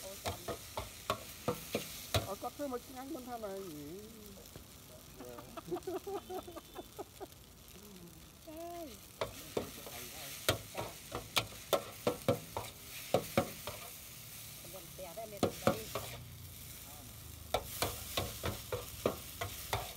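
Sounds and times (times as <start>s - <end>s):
food sizzling in a pan: 0.0s - 19.9s
spatula knocking and scraping pan: 0.2s - 2.3s, 10.5s - 13.9s, 15.4s - 16.3s, 17.5s - 19.9s.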